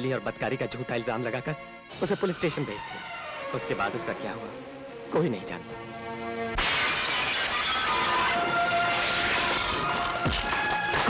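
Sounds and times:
dramatic film score chord: 0:00.0 - 0:06.6
loud crash sting: 0:06.5 - 0:10.6.

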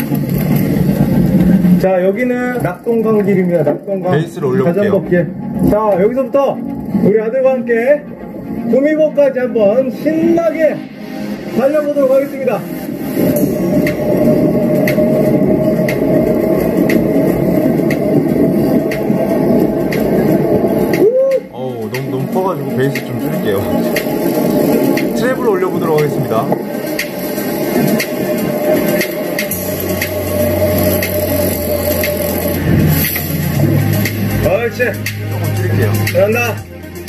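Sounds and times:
bike riding noise: 0:00.0 - 0:08.1, 0:11.3 - 0:37.0
wind rumble: 0:00.0 - 0:09.1, 0:09.8 - 0:35.8.

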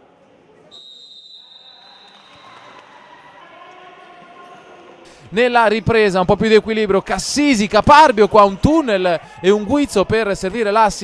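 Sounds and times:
high steady whistle: 0:00.7 - 0:02.9.

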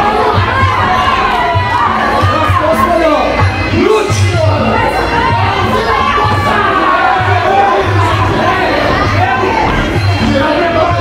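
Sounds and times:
crowd shouting and cheering: 0:00.0 - 0:11.0
music with low repeating beat: 0:00.0 - 0:11.0.

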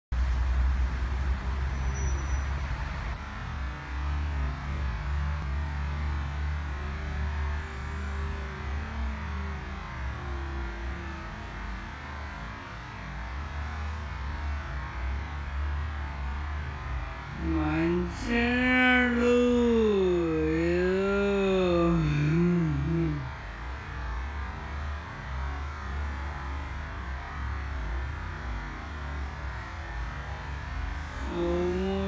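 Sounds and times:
low outdoor rumble: 0:00.1 - 0:32.0.

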